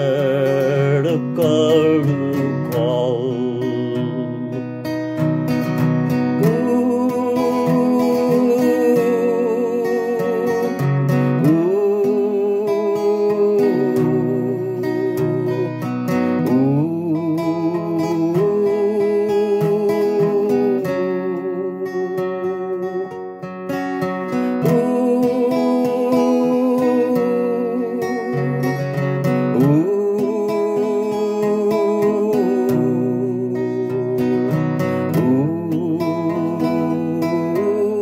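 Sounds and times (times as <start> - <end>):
man singing with vibrato: 0.0 - 38.0
strummed acoustic guitar: 0.0 - 38.0.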